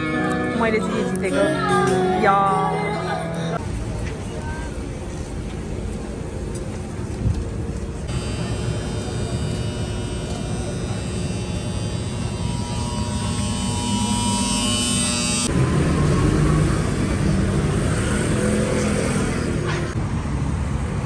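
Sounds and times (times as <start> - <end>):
rumbling street traffic: 0.0 - 21.0
rumbling noise with high hums: 3.6 - 15.5.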